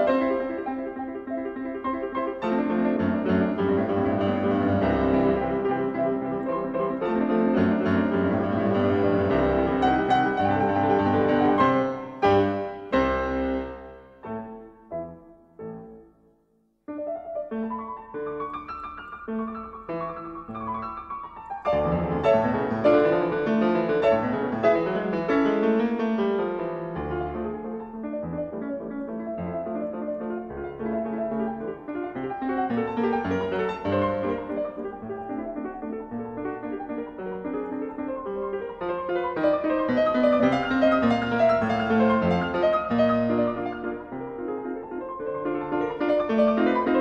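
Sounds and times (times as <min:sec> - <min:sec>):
piano music: 0:00.0 - 0:47.0.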